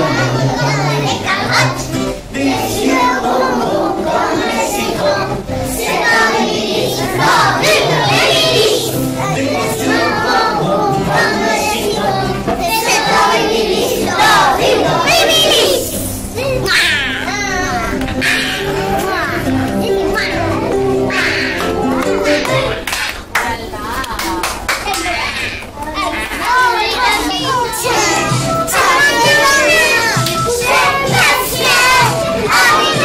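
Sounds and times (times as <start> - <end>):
young children singing: 0.0 - 23.0, 26.2 - 33.0.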